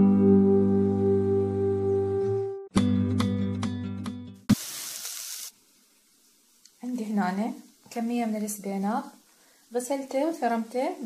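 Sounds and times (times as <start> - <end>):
onions sizzling in oil: 4.5 - 10.5.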